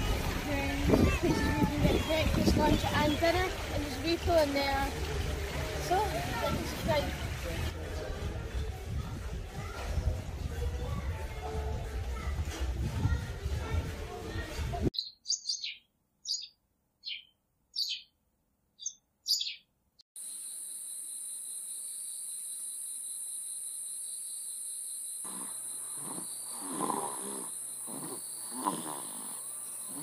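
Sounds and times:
high bird chirps: 0:15.0 - 0:18.2, 0:18.8 - 0:19.7
crickets droning: 0:20.2 - 0:30.0
child snoring: 0:25.3 - 0:30.0.

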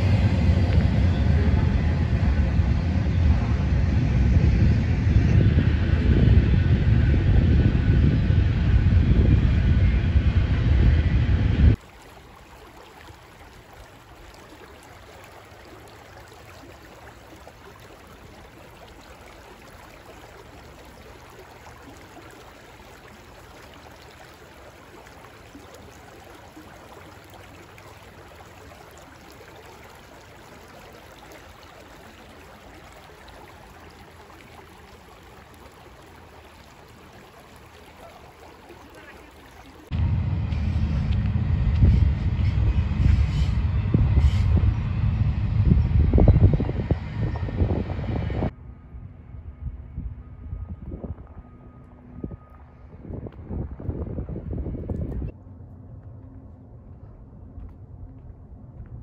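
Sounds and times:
wind rumbling on microphone: 0:00.0 - 0:11.8, 0:13.0 - 0:59.0
stream water running over stones: 0:11.8 - 0:39.9.

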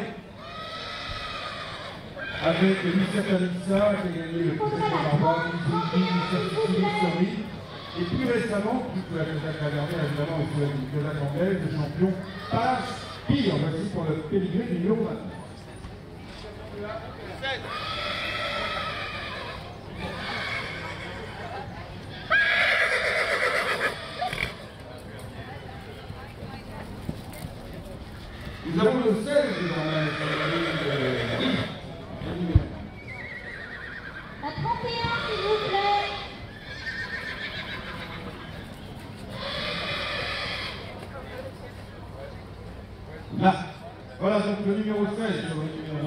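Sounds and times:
horse whinnying: 0:00.4 - 0:03.3, 0:17.6 - 0:21.2, 0:22.3 - 0:24.6, 0:28.3 - 0:31.8, 0:33.0 - 0:38.7, 0:39.3 - 0:40.9.

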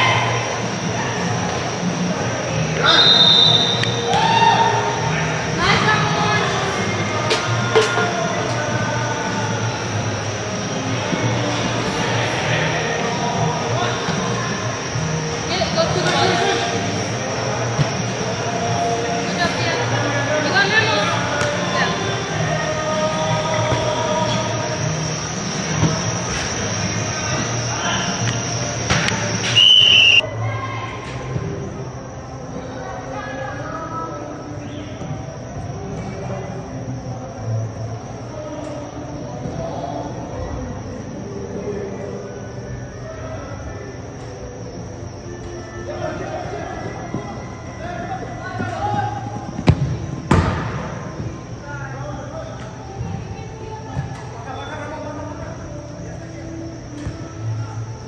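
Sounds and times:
background music: 0:00.0 - 0:58.0
ball kicks: 0:49.6 - 0:50.9.

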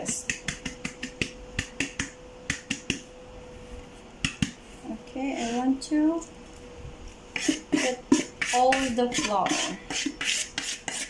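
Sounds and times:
hand tapping mixing bowl: 0:00.0 - 0:03.0.

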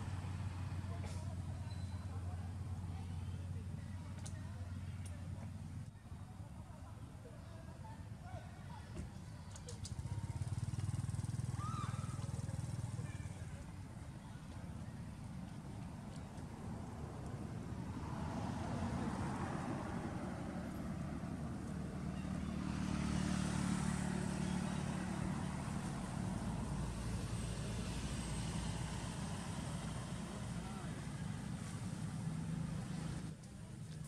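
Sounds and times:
vehicle engine passing by: 0:16.5 - 0:33.4.

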